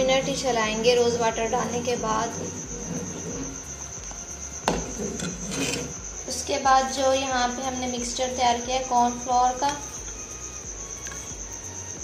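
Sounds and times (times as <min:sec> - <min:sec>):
spoon stirring in metal pot: 0:04.7 - 0:06.0, 0:11.0 - 0:11.4.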